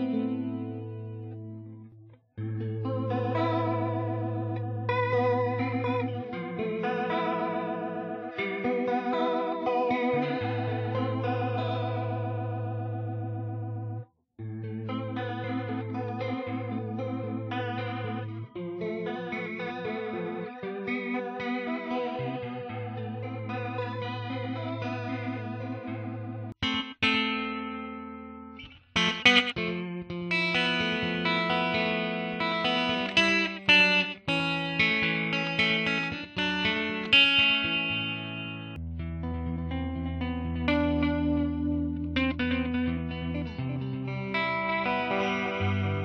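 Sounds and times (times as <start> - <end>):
electric guitar chords with vibrato: 0.0 - 46.0.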